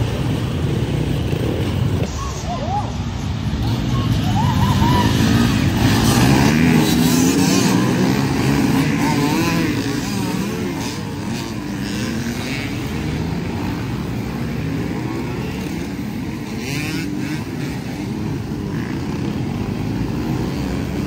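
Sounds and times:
dirt bikes revving: 0.0s - 21.0s.

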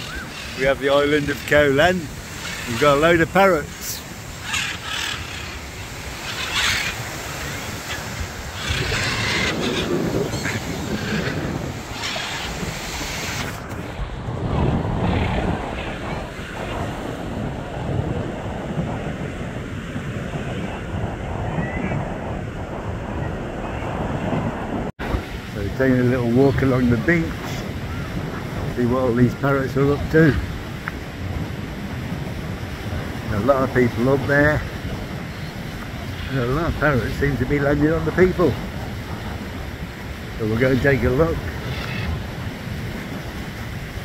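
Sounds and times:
parrots squawking: 0.0s - 13.4s, 41.6s - 42.2s.

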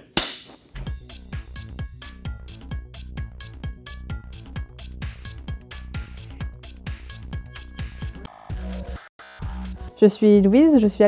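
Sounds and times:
electronic music with kick drum: 0.8s - 10.0s.

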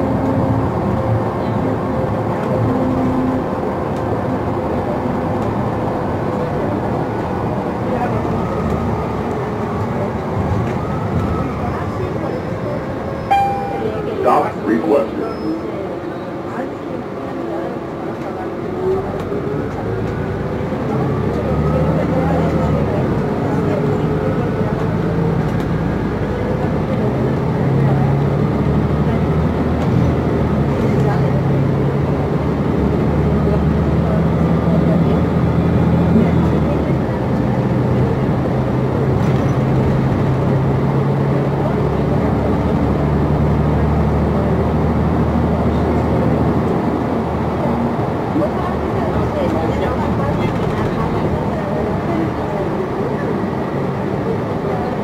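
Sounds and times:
bus engine hum and whine: 0.0s - 55.0s.

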